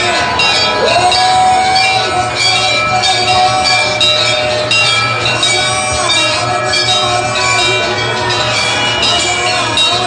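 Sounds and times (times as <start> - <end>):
bells ringing: 0.0 - 10.0
music: 0.0 - 10.0.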